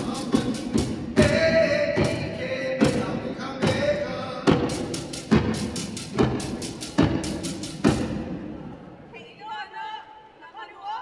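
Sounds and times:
percussion strokes: 0.0s - 8.8s.

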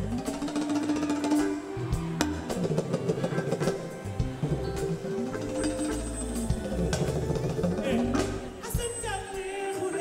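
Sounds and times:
electric guitar: 0.0s - 9.0s
drums and percussion: 0.0s - 10.0s.

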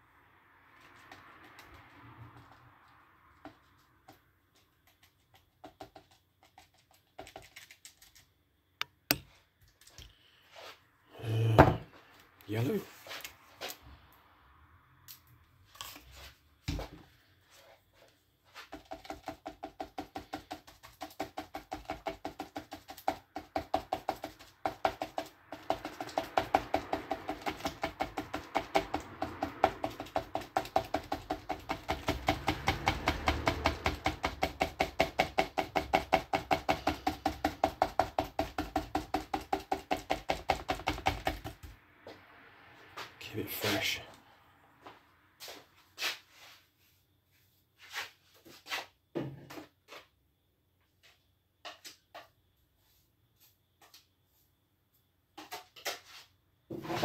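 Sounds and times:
paintbrush tapping on paper: 4.8s - 7.5s, 18.7s - 41.7s.

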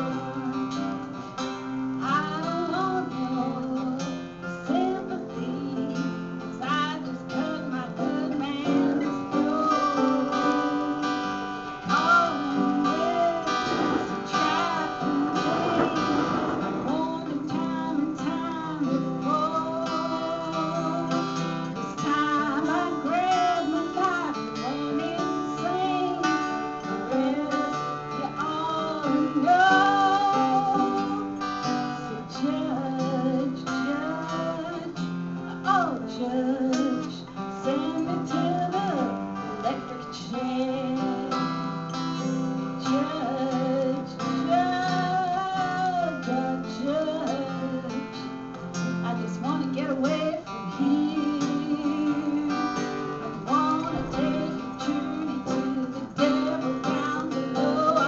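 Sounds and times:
acoustic guitars strumming blues: 0.0s - 58.0s.

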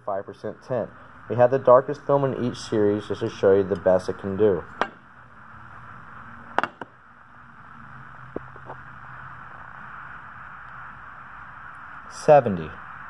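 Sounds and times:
room noise hiss and hum: 0.0s - 13.0s.

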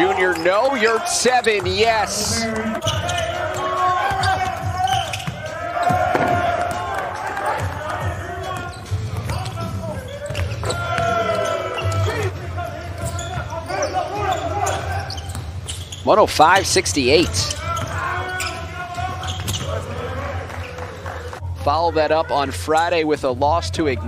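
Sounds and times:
players calling out: 0.0s - 22.9s.

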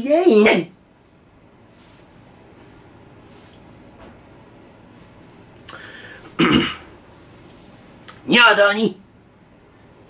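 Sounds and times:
man clearing throat: 6.4s - 6.9s.

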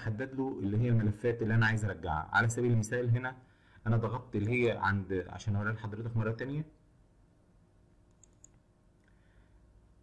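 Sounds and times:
computer mouse clicks: 8.1s - 9.2s.

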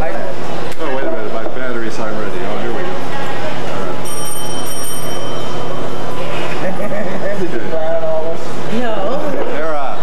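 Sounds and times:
crowded room din: 0.0s - 10.0s
high-pitched ringing tone: 3.8s - 6.2s.

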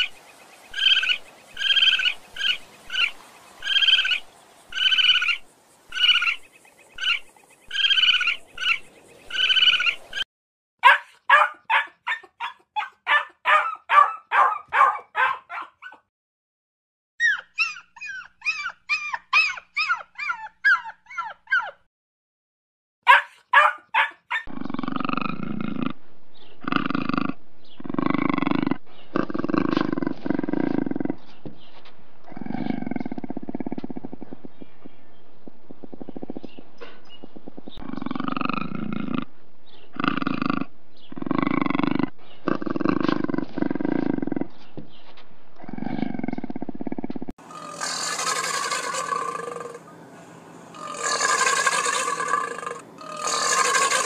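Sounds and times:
red panda squeaky calls: 17.2s - 21.7s
small dog yipping and whimpering: 17.2s - 21.9s
puma snarling: 24.4s - 31.3s, 32.2s - 35.0s, 35.7s - 36.6s, 37.4s - 44.6s, 45.6s - 49.9s, 50.7s - 54.0s.

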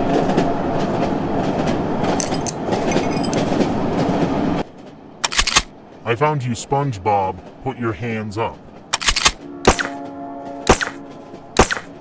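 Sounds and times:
train clickety-clack on rails: 0.0s - 12.0s.

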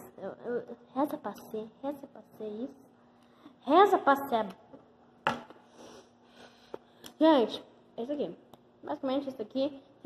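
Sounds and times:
faint breathing: 5.6s - 7.0s.

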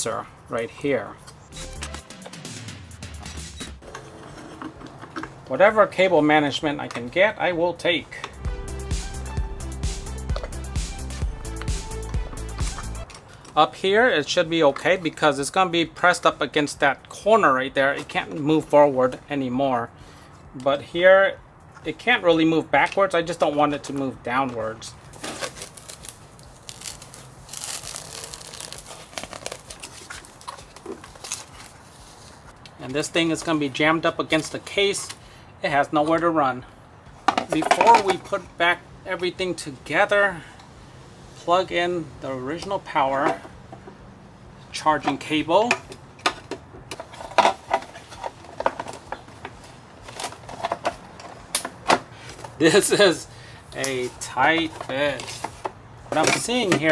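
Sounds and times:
rustling and crinkling: 23.4s - 33.6s, 46.2s - 52.8s, 53.8s - 56.9s.

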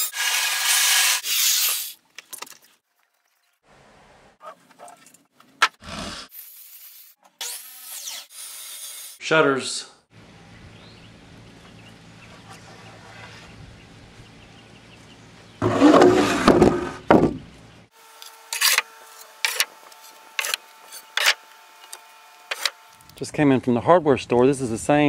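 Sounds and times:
wooden board scraping on deck: 15.6s - 17.4s.

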